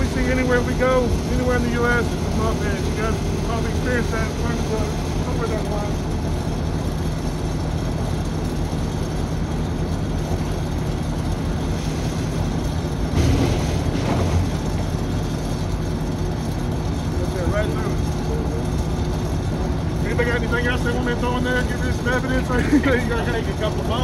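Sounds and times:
pump running with low hum: 0.0s - 24.0s
rough churning of shredding: 0.0s - 24.0s.

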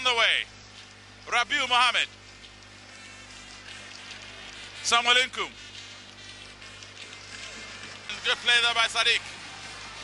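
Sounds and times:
stadium crowd buzzing drone: 2.8s - 10.0s.

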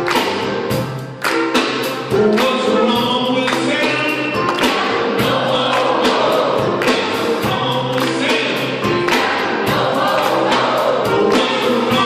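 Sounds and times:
small choir singing: 4.6s - 7.4s, 8.6s - 12.0s.

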